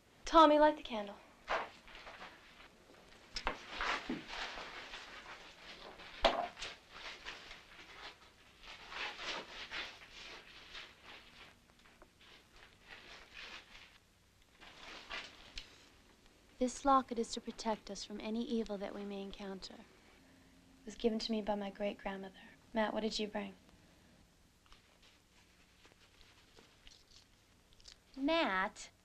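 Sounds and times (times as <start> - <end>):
rustling and handling: 1.4 - 16.5, 24.6 - 28.2.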